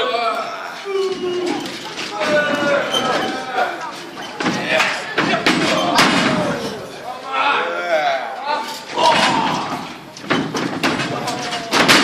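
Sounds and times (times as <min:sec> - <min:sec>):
people shouting: 0:05.3 - 0:10.0.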